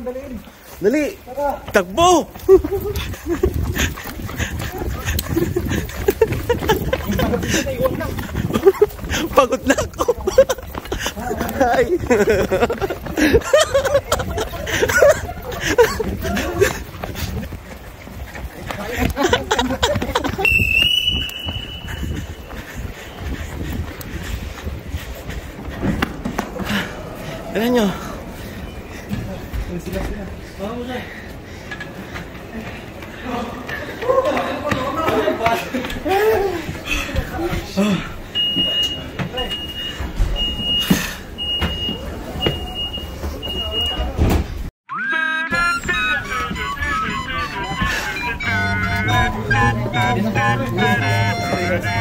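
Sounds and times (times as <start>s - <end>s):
voices: 0.0s - 52.0s.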